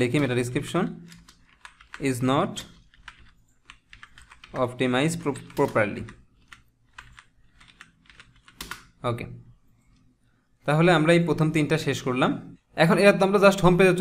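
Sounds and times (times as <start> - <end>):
computer keyboard typing: 0.0 - 9.0.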